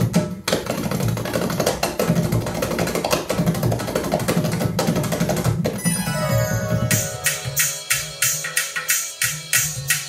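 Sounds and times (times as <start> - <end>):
music with strong bass and drums: 6.3 - 10.0.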